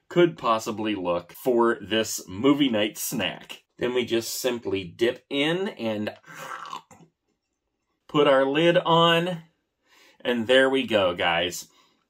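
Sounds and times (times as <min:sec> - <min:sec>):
man chewing gummy candy: 0:06.2 - 0:07.1.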